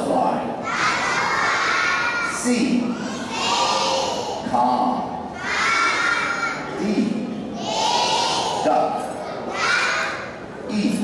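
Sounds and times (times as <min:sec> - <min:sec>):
children shouting in unison: 0:00.6 - 0:04.5, 0:05.3 - 0:06.8, 0:07.6 - 0:10.4.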